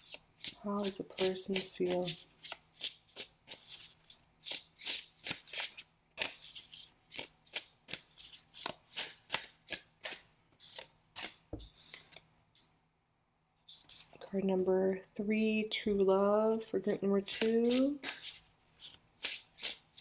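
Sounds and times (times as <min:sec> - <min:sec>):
cards being shuffled: 0:00.0 - 0:12.3, 0:17.2 - 0:20.0.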